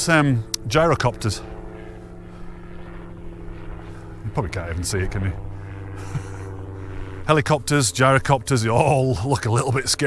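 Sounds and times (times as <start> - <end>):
distant gyrocopter drone: 0.0 - 10.0.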